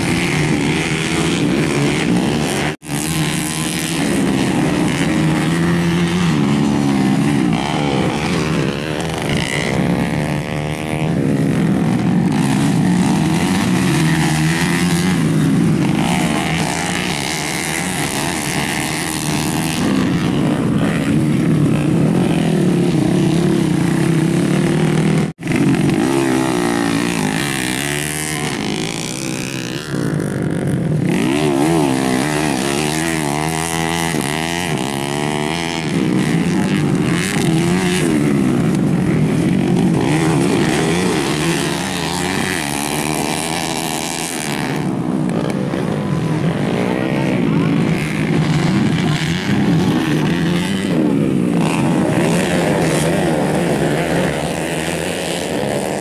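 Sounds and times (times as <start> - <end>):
motocross bike engines revving: 0.0 - 56.0.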